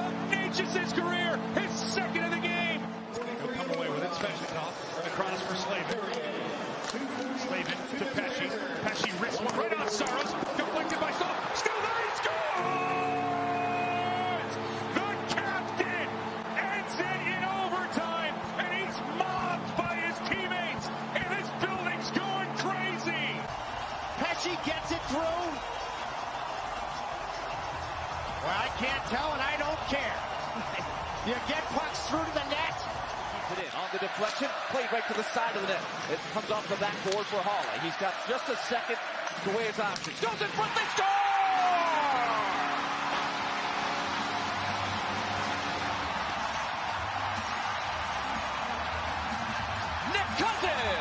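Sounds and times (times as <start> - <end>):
crowd cheering and shouting: 0.0 - 51.0
arena goal horn blast: 12.6 - 23.4, 42.1 - 46.3.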